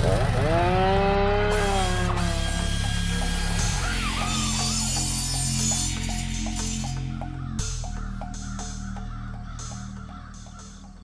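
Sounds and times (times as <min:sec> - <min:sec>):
motor revving sound effect: 0:00.0 - 0:06.8
music with clicking beat: 0:01.6 - 0:11.0.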